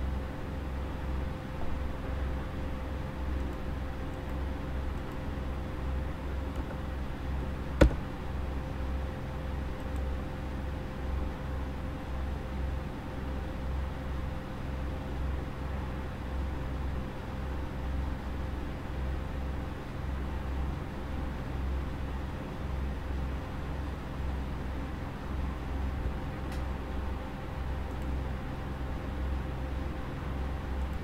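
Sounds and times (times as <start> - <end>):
steady hum and hiss: 0.0 - 31.0.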